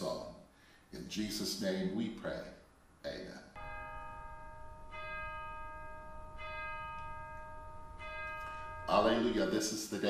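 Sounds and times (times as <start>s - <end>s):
bell-like chime ringing: 3.6s - 10.0s.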